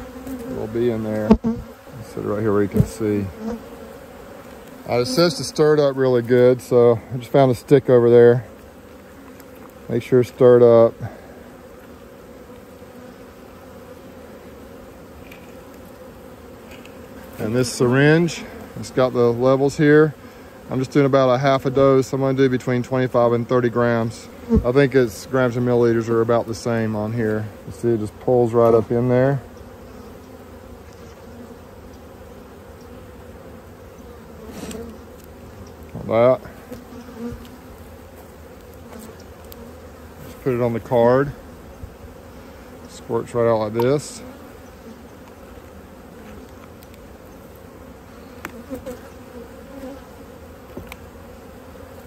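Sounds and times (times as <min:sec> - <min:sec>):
bees buzzing: 0:00.0 - 0:52.0
honeybees humming: 0:00.0 - 0:52.0.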